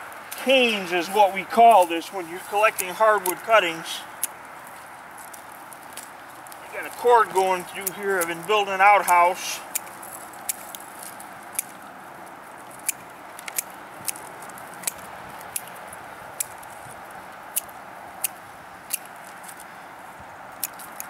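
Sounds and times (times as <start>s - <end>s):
faint steady hiss: 0.0s - 9.7s
pruners snipping canes: 0.2s - 11.9s, 12.7s - 19.8s, 20.5s - 21.0s.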